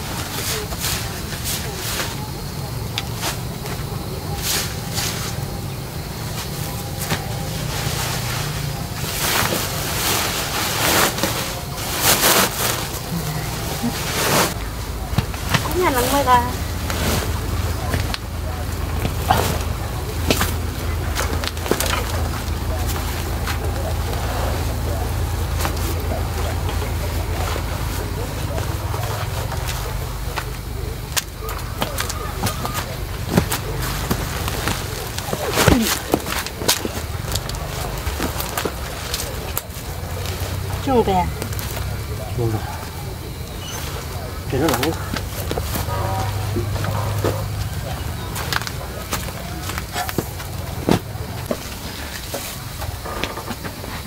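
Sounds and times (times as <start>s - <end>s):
plastic sacks rustling: 0.0s - 54.0s.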